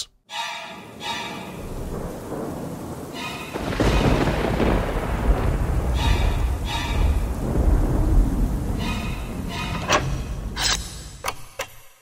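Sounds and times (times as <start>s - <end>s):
steady rain: 0.8s - 11.2s
thunder rumbling: 0.8s - 11.2s.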